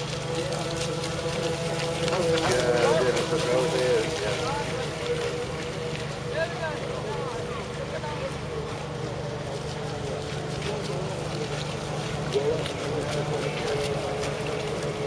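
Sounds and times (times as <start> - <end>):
model boat electric motors whining: 0.0 - 15.0.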